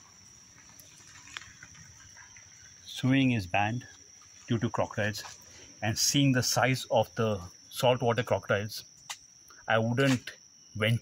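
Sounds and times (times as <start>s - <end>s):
faint outdoor background noise: 0.0s - 11.0s
insects droning: 0.0s - 11.0s.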